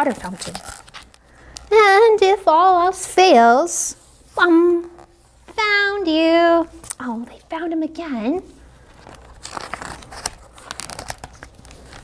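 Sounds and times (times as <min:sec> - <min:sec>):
book page turning: 0:00.0 - 0:01.2, 0:08.8 - 0:12.0.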